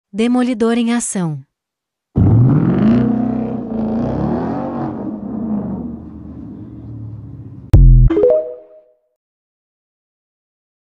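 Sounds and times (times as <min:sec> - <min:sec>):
car engine and exhaust revving: 0:02.2 - 0:07.7.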